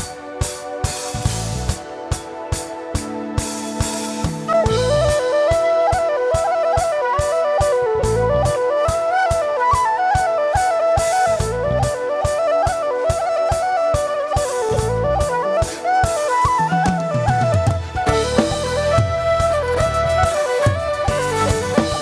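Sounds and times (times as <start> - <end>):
driving drum beat: 0.0 - 22.0
bass guitar: 1.1 - 1.8, 4.3 - 5.2, 7.8 - 8.6, 11.3 - 11.9, 14.7 - 15.3, 17.3 - 22.0
whistle playing reel melody: 1.8 - 22.0.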